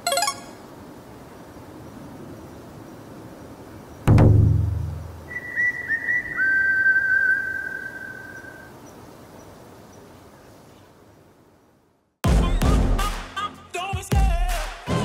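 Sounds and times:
heavy booming thud: 4.1s - 5.1s
person whistling: 5.3s - 8.6s.

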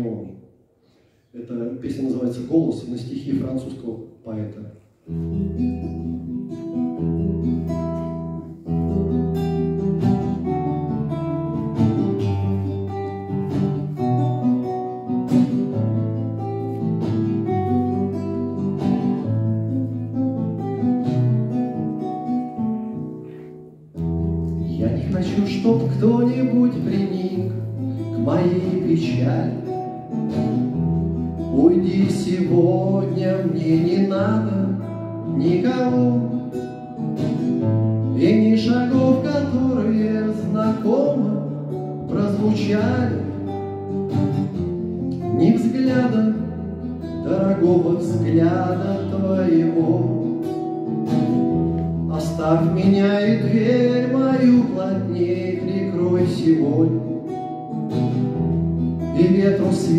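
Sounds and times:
acoustic guitar playing: 4.8s - 59.9s
man singing: 24.6s - 30.1s, 31.2s - 37.0s, 38.0s - 43.6s, 45.2s - 50.5s, 52.0s - 57.4s, 59.0s - 59.9s.

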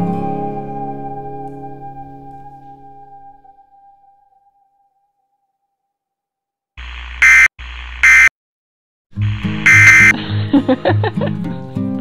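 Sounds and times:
electronic buzzer alarm blasts: 6.8s - 8.3s, 9.2s - 10.2s.

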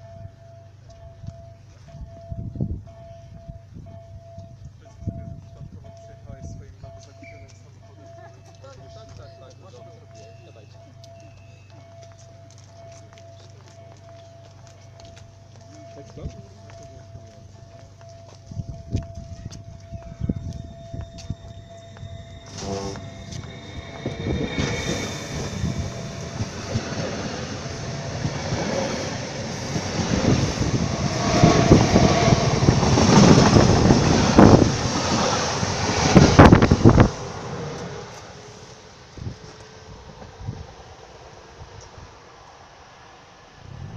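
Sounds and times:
electric train passing at speed: 0.0s - 43.9s.

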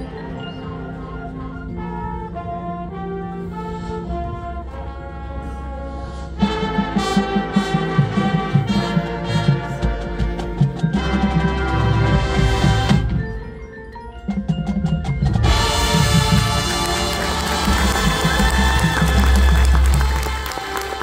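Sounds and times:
brass held notes: 0.0s - 13.2s, 15.4s - 21.0s
marching band playing: 0.1s - 13.6s, 14.3s - 21.0s
percussion hits: 14.3s - 21.0s.

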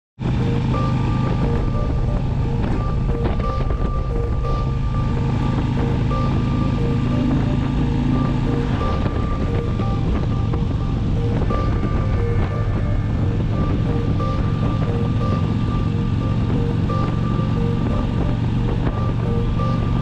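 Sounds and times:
motorcycle engine drone: 0.2s - 20.0s
wind noise: 0.2s - 20.0s.

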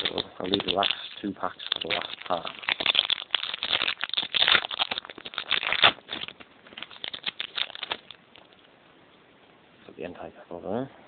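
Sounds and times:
foil wrapper and cards crinkling: 0.0s - 8.6s.

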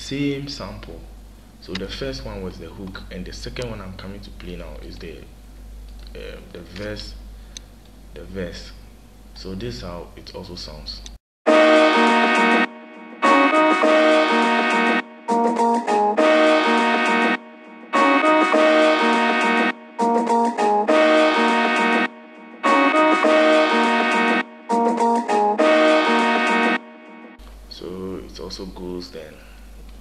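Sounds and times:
chopped-sample melody over a beat: 11.5s - 27.4s.

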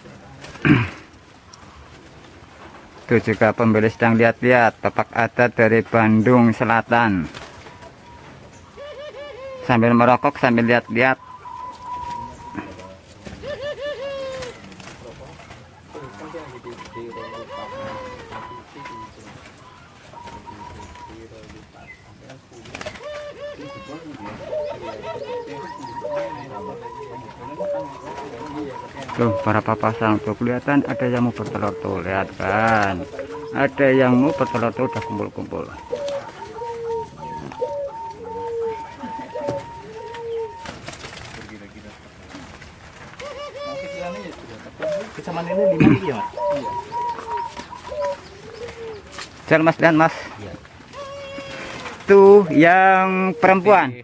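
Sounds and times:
dove cooing: 0.0s - 54.0s.

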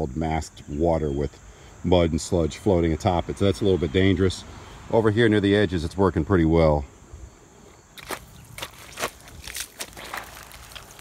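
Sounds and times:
footsteps squelching in wet mud: 8.0s - 11.0s.

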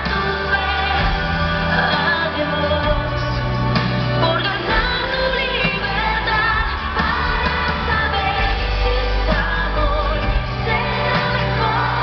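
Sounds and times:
live pop song over sound system: 0.0s - 12.0s.

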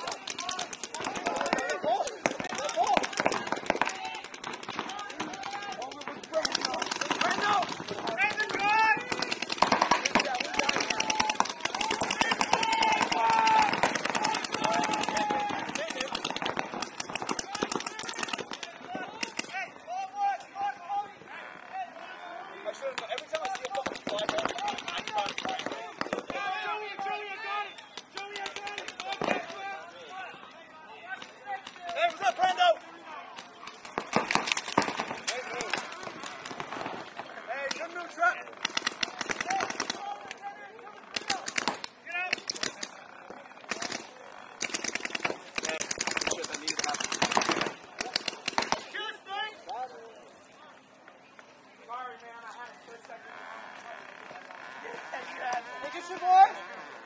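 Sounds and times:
paintball markers firing: 0.0s - 19.6s, 22.9s - 26.5s, 27.9s - 29.7s, 33.4s - 40.4s, 41.1s - 49.0s
players shouting: 0.0s - 50.8s, 51.8s - 57.0s.

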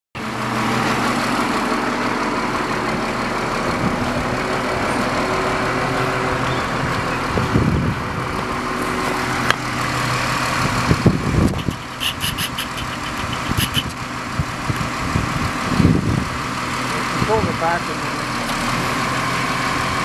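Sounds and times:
diesel engine idling: 0.2s - 20.0s.

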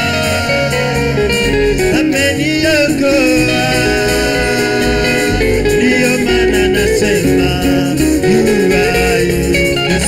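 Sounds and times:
backing voices singing: 0.0s - 10.0s
keyboard-led band with bass: 0.0s - 10.0s
man singing into microphone: 0.0s - 10.0s.

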